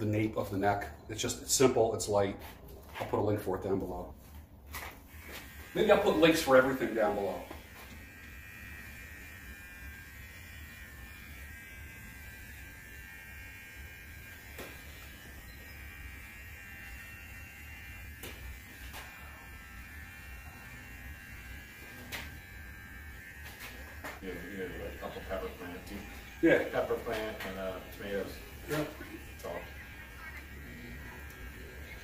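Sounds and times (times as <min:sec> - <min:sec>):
hair trimmer buzzing: 0:04.8 - 0:32.0.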